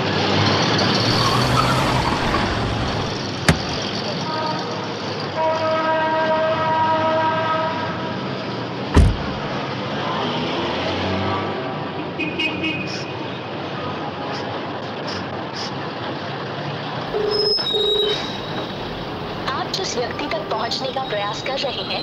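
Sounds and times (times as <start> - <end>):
outdoor street noise: 0.0 - 22.0
car door opening click: 3.4 - 3.9, 8.9 - 9.5
car door shutting thump: 3.5 - 3.9, 8.9 - 9.5
steady multi-pitch tone: 17.1 - 19.2.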